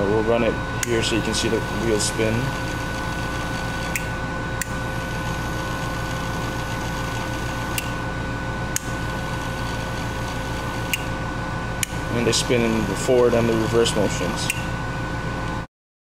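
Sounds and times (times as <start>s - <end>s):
small motor whirring: 0.9s - 8.0s, 8.8s - 11.1s.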